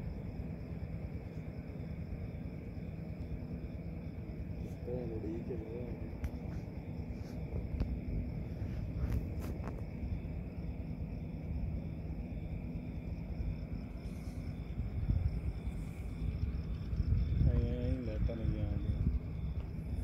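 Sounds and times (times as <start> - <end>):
crickets chirping: 0.0 - 20.0
low rumble: 0.0 - 20.0.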